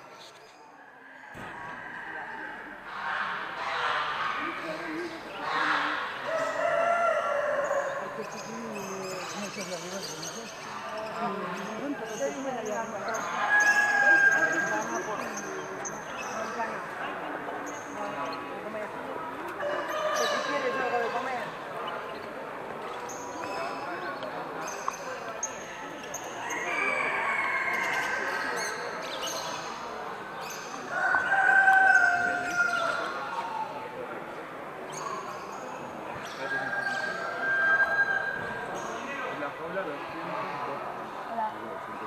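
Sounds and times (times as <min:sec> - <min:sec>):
background chatter of voices: 0:00.0 - 0:42.0
roosters crowing: 0:05.8 - 0:08.4, 0:13.1 - 0:15.0, 0:19.6 - 0:20.9, 0:26.4 - 0:28.7, 0:30.8 - 0:33.3, 0:36.4 - 0:38.7.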